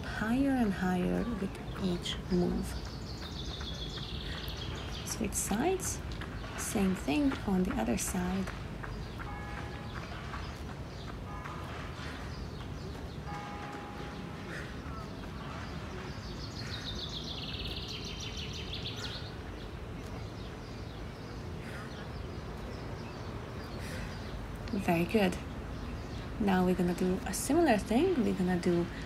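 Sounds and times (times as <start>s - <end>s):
outdoor background noise: 0.0s - 29.0s
bird chirps: 8.8s - 24.8s.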